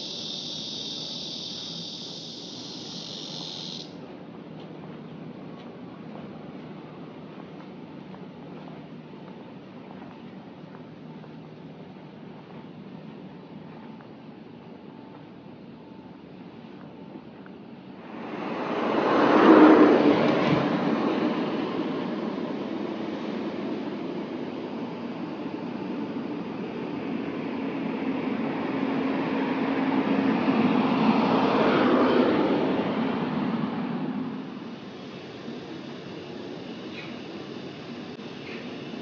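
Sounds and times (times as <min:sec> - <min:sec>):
vehicle engine and tyre noise: 0:00.0 - 0:39.0.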